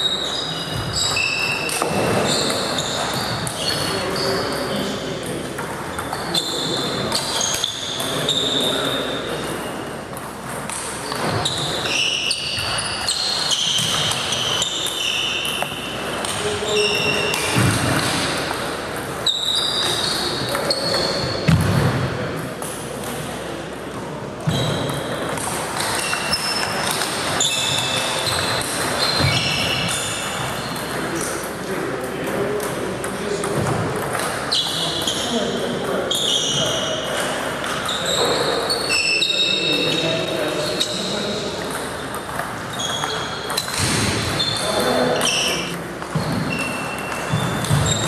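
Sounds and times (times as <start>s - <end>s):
background chatter: 22.1s - 46.3s.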